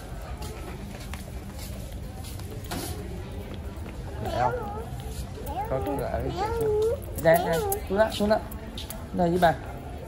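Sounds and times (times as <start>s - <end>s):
child whining and babbling: 4.2s - 7.9s.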